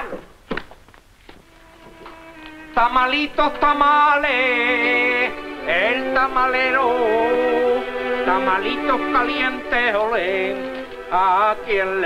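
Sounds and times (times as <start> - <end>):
faint held musical notes: 1.4 - 12.0.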